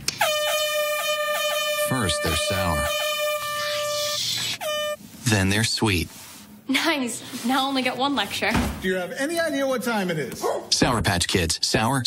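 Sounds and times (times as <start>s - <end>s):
steady horn-like tone: 0.2s - 5.0s.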